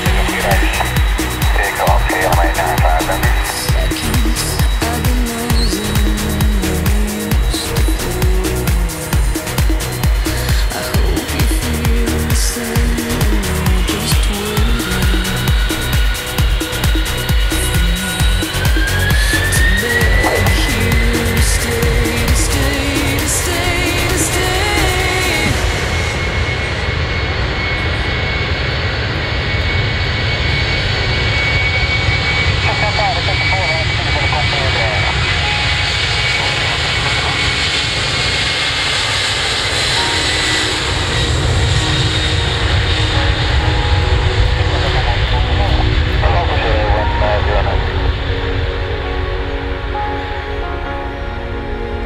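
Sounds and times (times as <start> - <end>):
jet engines rumbling and whining: 0.0 - 52.0.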